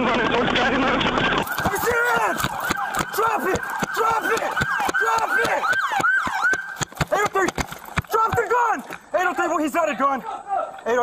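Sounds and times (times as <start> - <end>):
police siren yelping: 0.0 - 7.0
running footsteps: 1.3 - 10.8.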